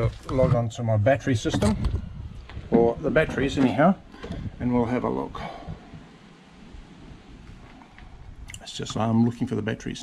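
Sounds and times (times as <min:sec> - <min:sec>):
low rumble with light hiss: 0:00.0 - 0:10.0.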